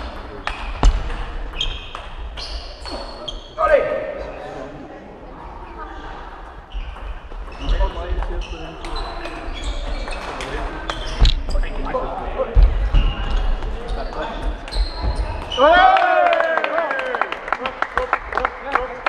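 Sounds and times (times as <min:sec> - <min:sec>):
feet thumping and squeaking on floor: 0:00.5 - 0:03.6, 0:06.7 - 0:15.7.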